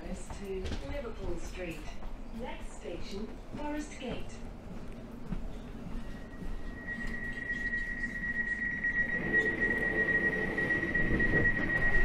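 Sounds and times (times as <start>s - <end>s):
high-pitched door warning tone: 6.1s - 12.0s.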